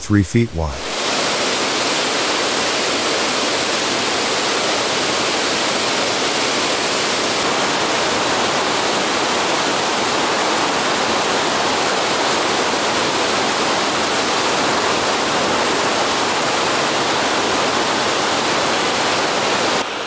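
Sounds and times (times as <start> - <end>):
waterfall rushing: 0.8 - 20.0.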